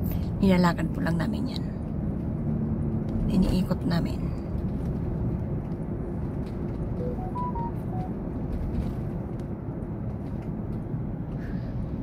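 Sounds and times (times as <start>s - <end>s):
road and engine rumble: 0.0s - 12.0s
short tones: 7.0s - 8.1s.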